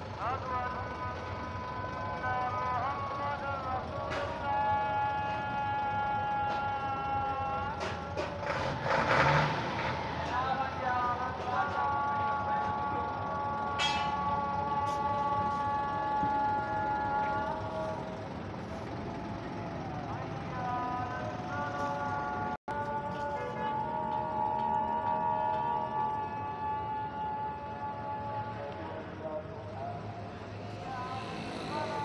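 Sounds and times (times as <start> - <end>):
diesel engine idling: 0.0 - 32.0.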